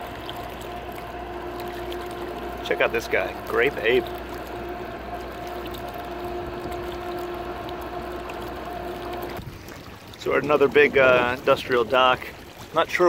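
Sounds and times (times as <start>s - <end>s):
diesel machinery humming: 0.0s - 11.6s
water washing: 0.0s - 13.0s.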